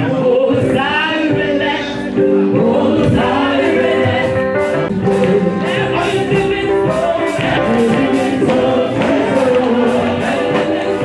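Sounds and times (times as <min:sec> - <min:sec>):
gospel choir singing: 0:00.0 - 0:11.0
keyboard accompaniment: 0:00.0 - 0:11.0.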